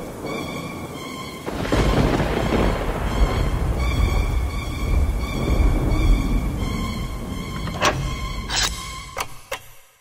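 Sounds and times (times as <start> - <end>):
rolling thunder: 0.0 - 7.5
rain: 0.0 - 8.6.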